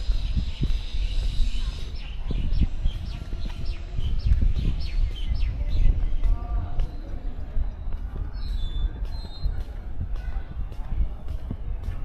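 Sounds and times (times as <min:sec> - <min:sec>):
small birds chirping: 0:00.0 - 0:09.8
wind rumble on microphone: 0:00.0 - 0:12.0.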